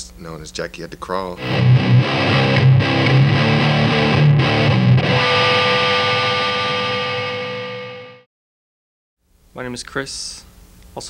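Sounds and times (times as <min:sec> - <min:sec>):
distorted electric guitar chord: 0:01.4 - 0:08.3.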